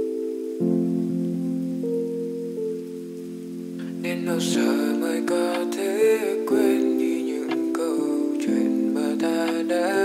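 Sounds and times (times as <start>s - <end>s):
slow lofi instrumental chords: 0.0s - 10.0s.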